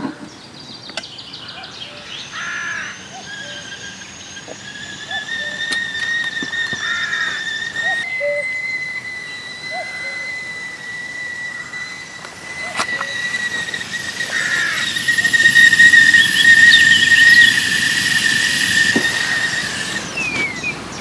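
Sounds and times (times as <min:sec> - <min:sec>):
kettle whistling: 0:02.3 - 0:21.0.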